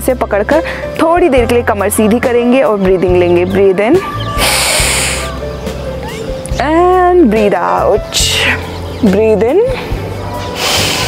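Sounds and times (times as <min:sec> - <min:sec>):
background music: 0:00.0 - 0:11.0
woman inhaling deeply: 0:04.4 - 0:05.4.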